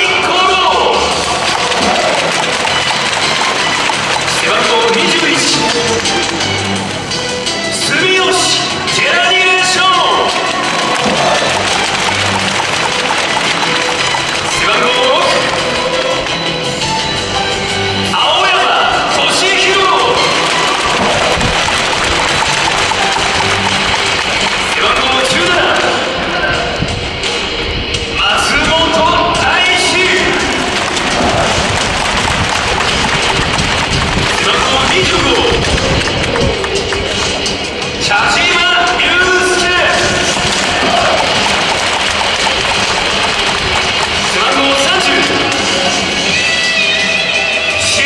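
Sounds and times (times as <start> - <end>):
faint music over loudspeakers: 0.0 - 48.0
stadium crowd noise: 0.0 - 48.0.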